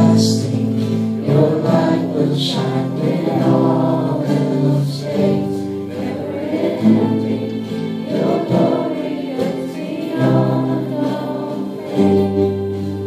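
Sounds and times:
man singing lead: 0.0s - 6.2s
acoustic guitars: 0.0s - 13.0s
many voices singing along: 0.0s - 13.0s.

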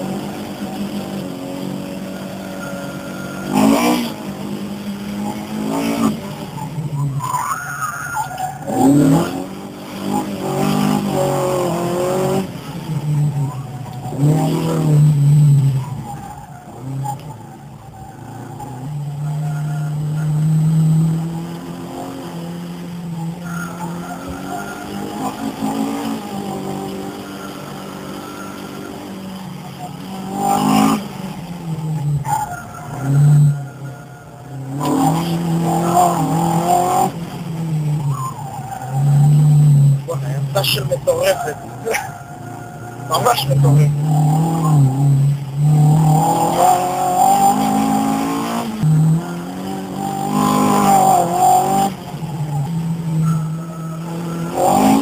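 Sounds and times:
car engine revving: 0.0s - 55.0s.

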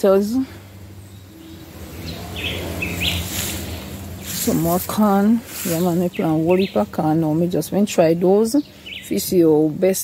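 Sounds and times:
low steady hum: 0.0s - 10.0s
bird calls: 0.9s - 9.6s.

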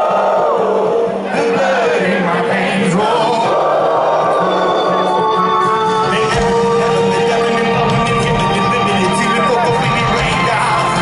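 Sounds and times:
crowd singing along: 0.0s - 11.0s
live rock band: 4.7s - 11.0s.

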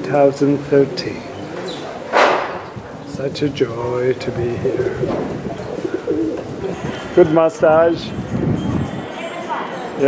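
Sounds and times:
pigeons cooing: 4.1s - 7.1s.

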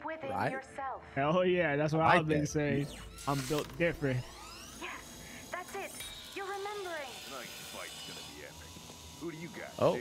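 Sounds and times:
background music: 0.0s - 3.2s.

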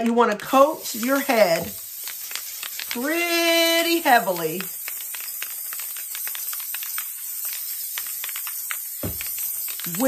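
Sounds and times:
aerosol can spraying hiss: 0.5s - 10.0s.

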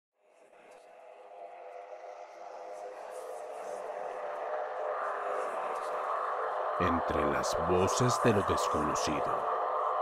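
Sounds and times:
dense drone: 0.9s - 10.0s.

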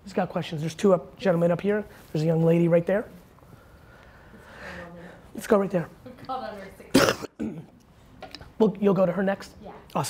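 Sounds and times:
person clearing throat: 6.9s - 7.8s.

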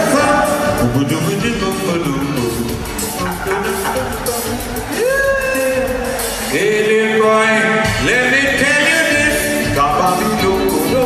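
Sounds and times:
live band playing: 0.0s - 11.0s
men singing calypso: 0.0s - 11.0s.

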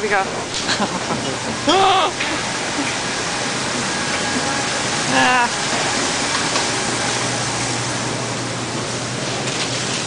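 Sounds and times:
refrigerated display cases hissing: 0.1s - 10.0s.

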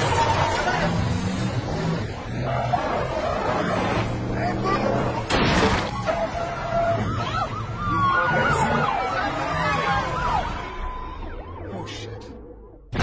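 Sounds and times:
vehicle engines running: 0.0s - 10.8s
tyre squeals rising and falling: 0.0s - 11.3s.

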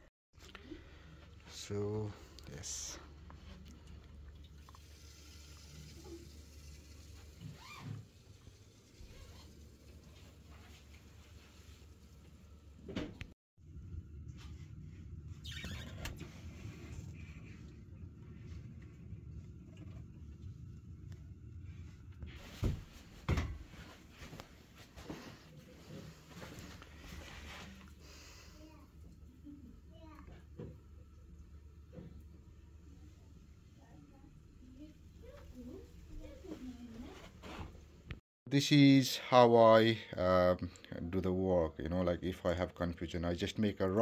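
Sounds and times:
low steady hum: 13.6s - 24.0s
footsteps on carpet: 22.4s - 27.7s.

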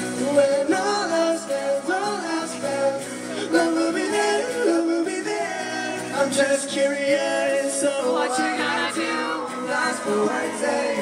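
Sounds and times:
acoustic guitar strumming: 0.0s - 11.0s
men singing: 0.0s - 11.0s.

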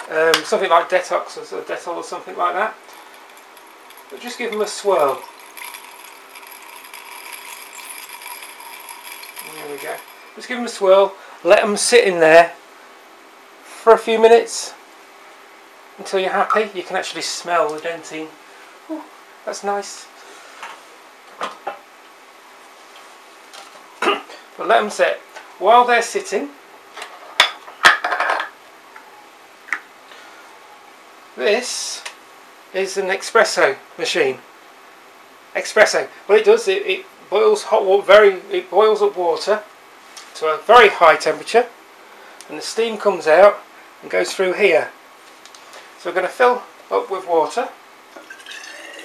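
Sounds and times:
metal jewellery clinking in glass: 2.8s - 10.5s.

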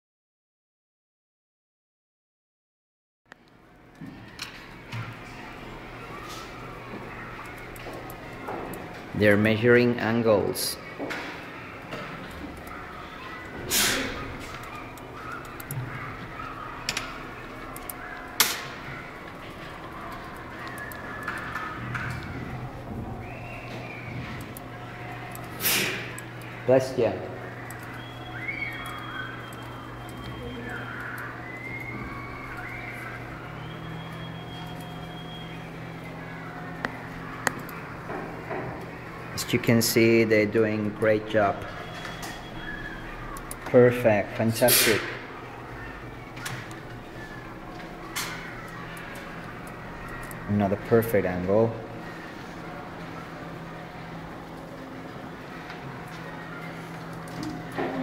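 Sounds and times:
steady low hum: 3.4s - 58.0s
distant children's voices: 3.6s - 58.0s
sharp clicks: 11.1s - 22.4s, 27.4s - 35.6s, 36.7s - 38.2s, 41.7s - 43.8s.

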